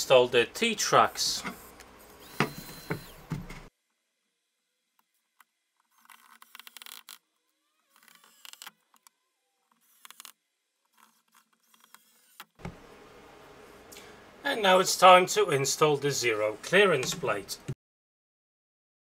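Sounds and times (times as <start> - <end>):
electric screwdriver running: 2.2 - 3.2, 7.9 - 8.7, 11.6 - 12.5.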